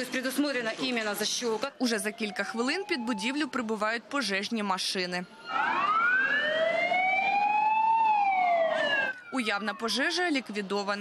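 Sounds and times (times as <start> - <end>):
fire engine siren wailing: 1.8 - 4.0, 5.3 - 10.6.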